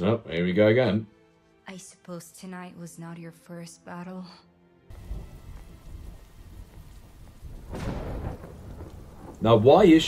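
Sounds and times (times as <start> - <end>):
low rumble of thunder: 4.9 - 10.0
rain falling steadily: 4.9 - 10.0.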